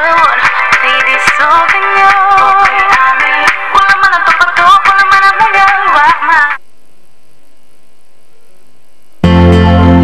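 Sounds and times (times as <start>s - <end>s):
low hum and hiss: 3.8s - 10.0s.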